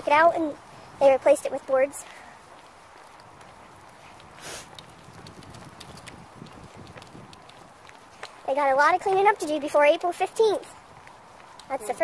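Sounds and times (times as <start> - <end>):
footsteps walking: 0.0 - 12.0.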